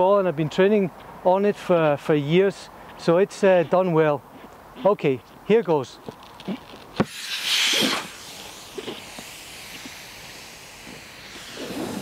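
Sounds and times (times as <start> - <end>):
air hissing out of ball: 7.0 - 12.0.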